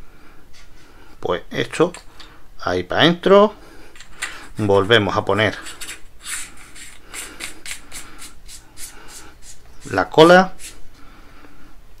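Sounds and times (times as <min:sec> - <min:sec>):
metal threads rasping: 0:04.0 - 0:10.8.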